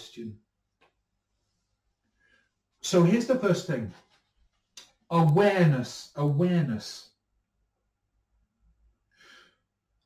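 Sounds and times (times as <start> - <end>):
man's faint breath: 9.1 - 9.7.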